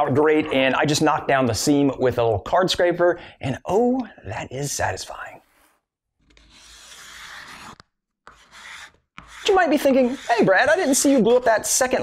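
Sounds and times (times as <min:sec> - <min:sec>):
scraper scraping wood: 0:05.4 - 0:12.0.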